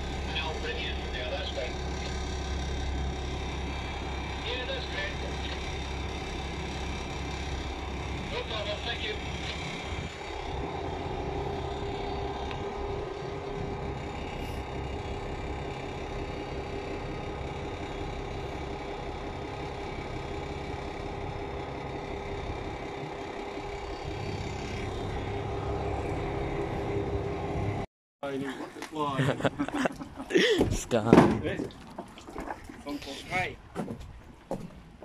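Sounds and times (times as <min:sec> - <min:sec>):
boat engine running: 0:00.0 - 0:30.8.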